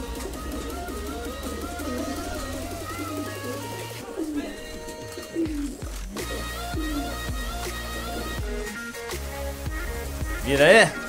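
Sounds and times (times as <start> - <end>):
pigeons cooing: 0.0 - 9.0
background music with bass: 0.0 - 11.0.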